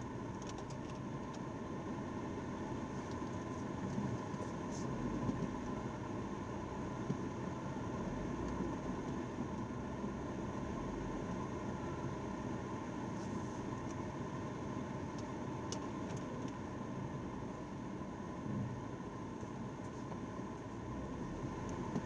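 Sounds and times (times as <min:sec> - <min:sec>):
car cabin engine noise: 0:00.0 - 0:22.0.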